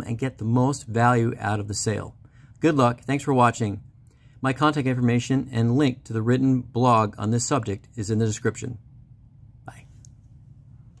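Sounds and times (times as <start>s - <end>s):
low hum: 7.8s - 11.0s.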